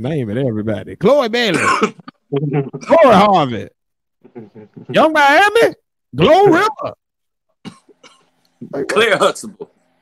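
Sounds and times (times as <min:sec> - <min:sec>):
person coughing: 0:01.5 - 0:02.1, 0:07.6 - 0:08.3.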